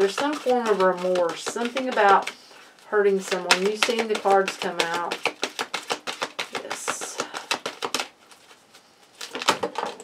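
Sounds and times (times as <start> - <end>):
cards being shuffled: 0.0 - 2.5, 3.1 - 10.0.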